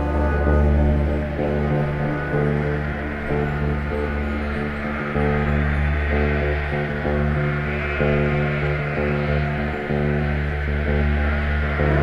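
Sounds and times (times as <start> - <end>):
bass guitar notes: 0.0 - 12.0
sustained keyboard chords: 0.0 - 12.0.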